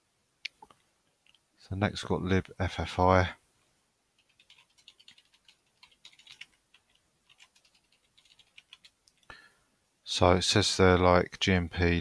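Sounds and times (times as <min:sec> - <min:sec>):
typing on computer keyboard: 0:04.2 - 0:09.3.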